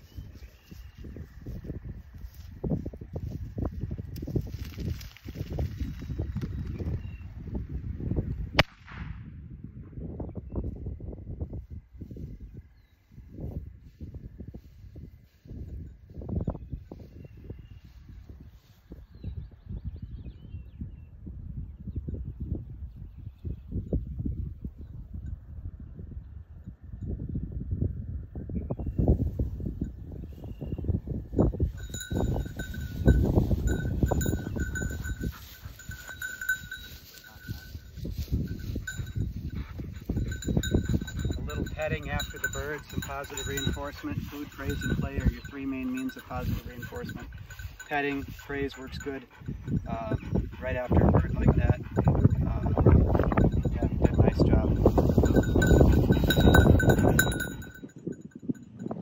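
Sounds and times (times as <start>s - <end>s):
footsteps through dry grass: 0.0s - 6.7s, 31.8s - 45.0s
wind buffeting microphone: 0.0s - 59.0s.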